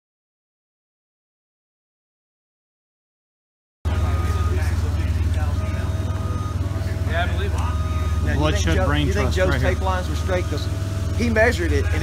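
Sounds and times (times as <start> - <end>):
faint voices: 3.9 - 12.0
forklift engine idling: 3.9 - 12.0.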